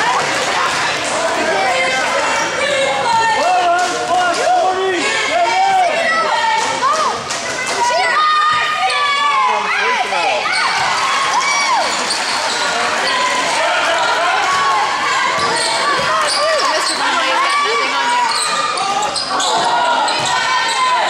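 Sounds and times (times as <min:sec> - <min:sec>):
crowd talking and calling out: 0:00.0 - 0:21.0.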